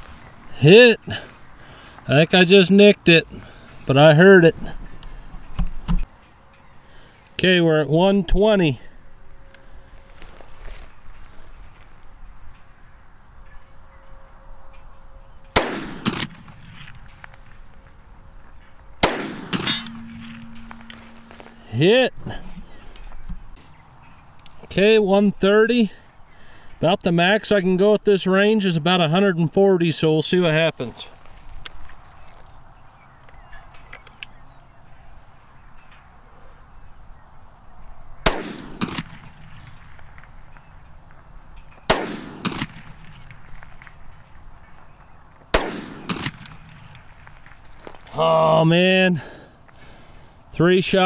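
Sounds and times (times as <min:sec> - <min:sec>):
pistol shots: 0:15.6 - 0:17.6, 0:19.0 - 0:21.6, 0:38.2 - 0:40.7, 0:41.9 - 0:44.0, 0:45.5 - 0:47.6
bullet clanging on steel target: 0:19.4 - 0:21.7.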